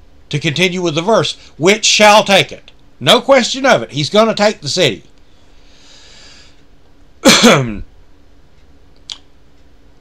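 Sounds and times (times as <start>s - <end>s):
man breathing in: 5.3s - 6.7s.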